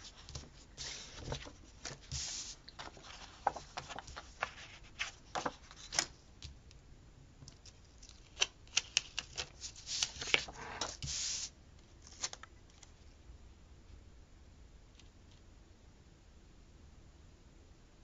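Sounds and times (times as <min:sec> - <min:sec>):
paper cards handled on desk: 0:00.0 - 0:06.6, 0:07.6 - 0:12.9.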